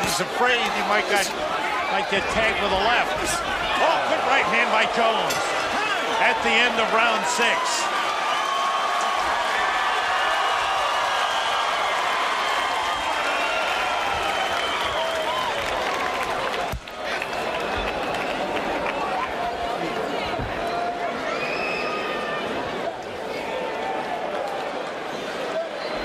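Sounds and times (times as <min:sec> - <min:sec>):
crowd cheering and applauding: 0:00.0 - 0:26.0.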